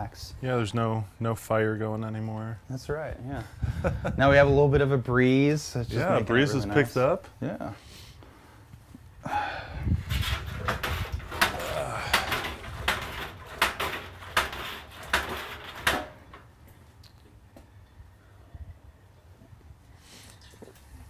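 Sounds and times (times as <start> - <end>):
metal equipment clinking and knocking: 10.3 - 16.5.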